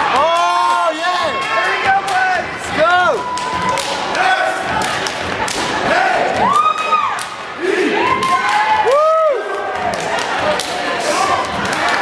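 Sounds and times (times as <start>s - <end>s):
audience whooping and shouting: 2.8s - 4.5s, 5.9s - 10.0s.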